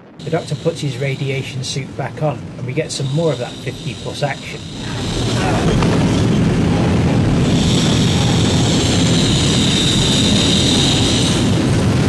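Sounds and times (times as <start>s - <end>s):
high hiss: 0.0s - 12.0s
loud rumbling roar: 0.0s - 12.0s.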